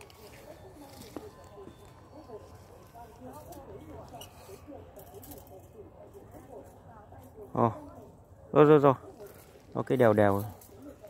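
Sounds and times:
faint chattering voices: 0.0 - 11.0.

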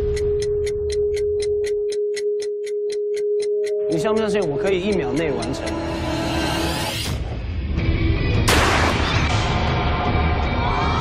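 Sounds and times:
clock ticking: 0.0 - 6.8.

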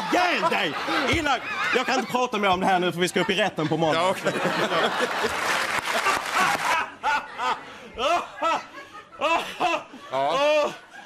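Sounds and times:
audience applauding: 4.7 - 6.9.

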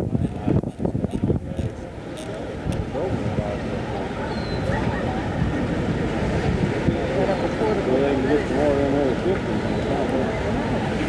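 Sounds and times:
sea water rushing: 0.9 - 11.0.

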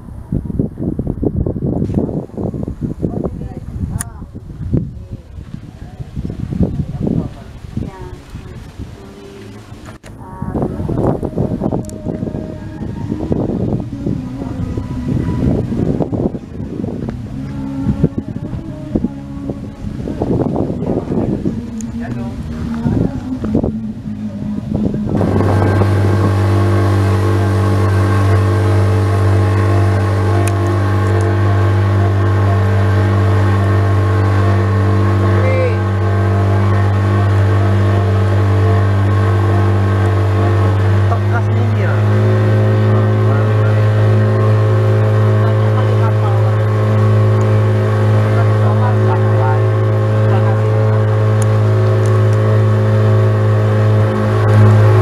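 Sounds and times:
boat engine running: 0.0 - 55.0.

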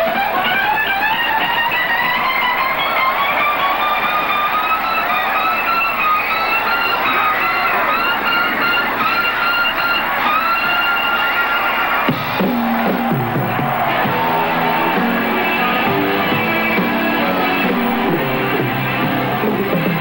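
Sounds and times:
rock band playing: 0.0 - 20.0
electric guitar bending notes: 12.1 - 20.0.

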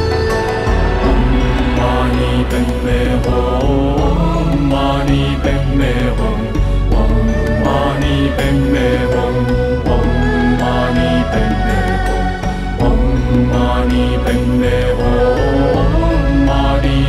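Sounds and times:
steady low drone: 0.0 - 17.0
voices chanting over music: 0.0 - 17.0.

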